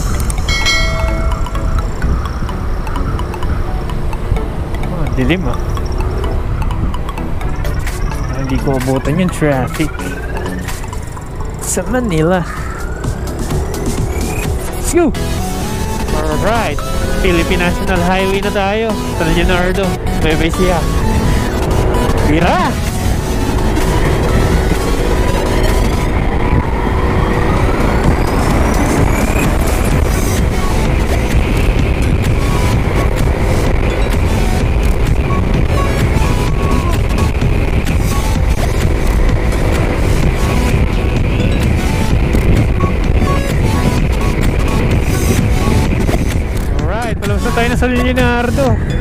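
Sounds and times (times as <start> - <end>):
background music: 0.0 - 49.0
rising tone: 0.0 - 49.0
scooter engine running: 0.0 - 49.0
wind and road rush: 0.0 - 49.0.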